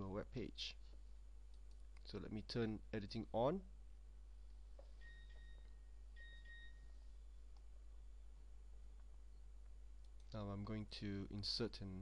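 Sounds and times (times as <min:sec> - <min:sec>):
low steady hum: 0:00.0 - 0:12.0
faint electronic beeps: 0:04.8 - 0:07.5.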